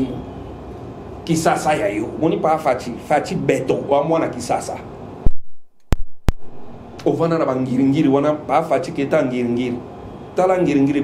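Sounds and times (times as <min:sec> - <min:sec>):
brief low rumble: 0:05.2 - 0:06.9
sharp clicks: 0:05.3 - 0:07.1.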